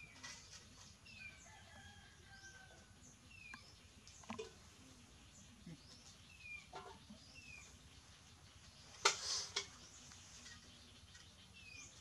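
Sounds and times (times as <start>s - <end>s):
faint high bird chirps: 1.1s - 12.0s.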